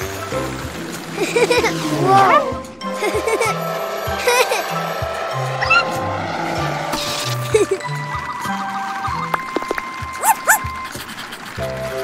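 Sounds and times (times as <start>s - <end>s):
toy car rushing noise: 0.0s - 7.8s
cartoon music with bass line: 1.2s - 4.7s, 7.0s - 10.8s
squeaky character vocalizations: 1.8s - 2.5s, 10.2s - 10.6s.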